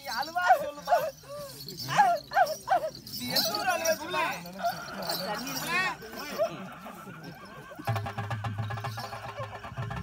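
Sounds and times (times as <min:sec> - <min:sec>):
hand-played barrel drum: 0:07.6 - 0:10.0.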